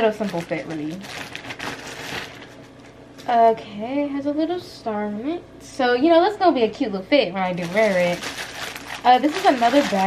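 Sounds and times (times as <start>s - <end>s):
packaging rustling and crinkling: 0.0s - 3.0s, 7.5s - 10.0s.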